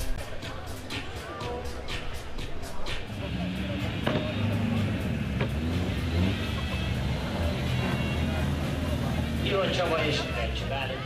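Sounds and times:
car engine running at low revs: 2.8s - 11.0s.

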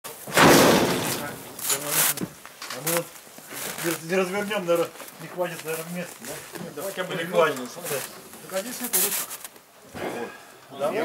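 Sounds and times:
loud clatter: 0.3s - 2.0s.

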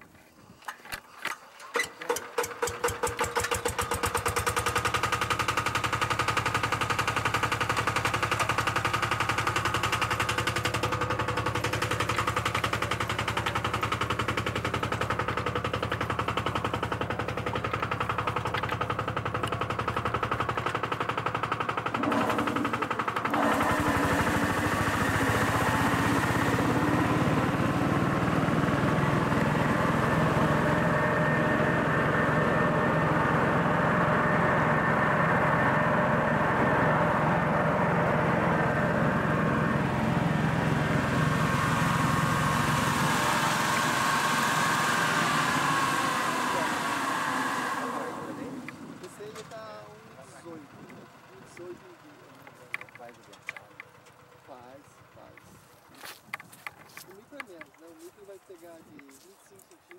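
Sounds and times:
crop sprayer engine drone: 0.1s - 59.9s.

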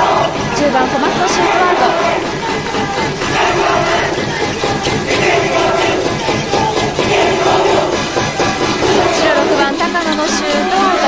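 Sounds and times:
crowd chanting in unison: 0.0s - 11.0s
crowd noise: 0.0s - 11.0s.

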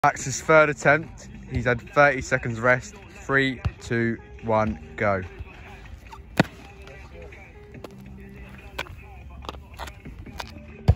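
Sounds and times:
trainers landing on tarmac: 4.5s - 10.9s.

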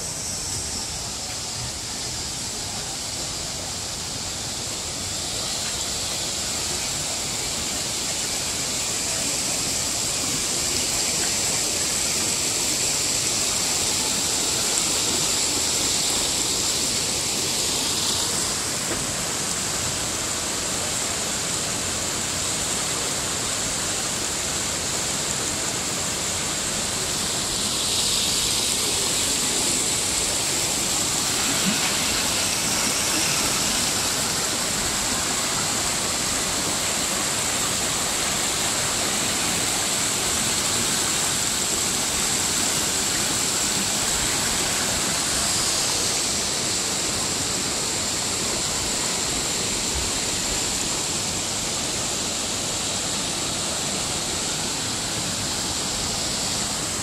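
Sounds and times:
river rushing over rocks: 0.0s - 57.0s.

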